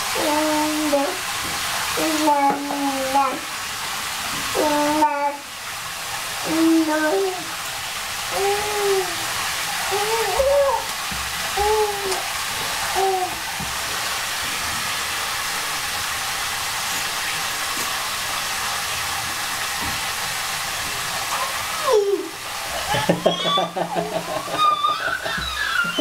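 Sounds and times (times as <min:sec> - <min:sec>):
running water from a tap: 0:00.0 - 0:26.0.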